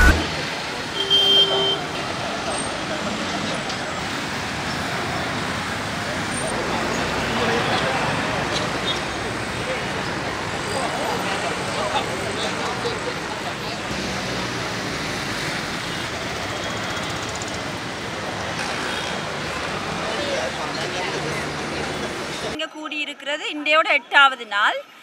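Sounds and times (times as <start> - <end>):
roadside traffic noise: 0.0 - 25.0.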